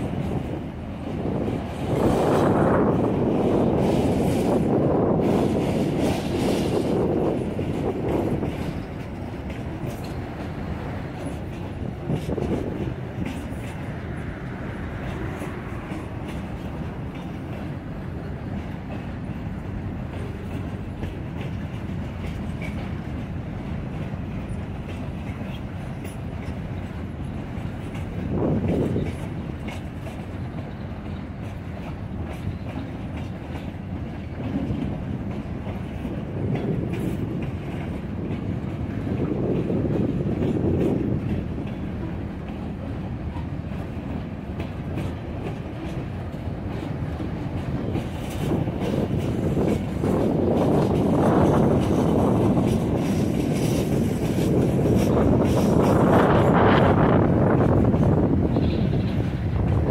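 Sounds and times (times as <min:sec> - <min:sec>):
clickety-clack over rail joints: 0:00.0 - 0:59.9
train wheels rumbling on rail: 0:00.0 - 0:59.9.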